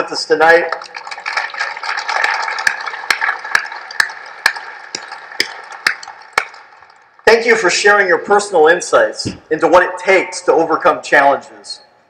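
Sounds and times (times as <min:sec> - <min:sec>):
audience applause: 0:00.7 - 0:07.1.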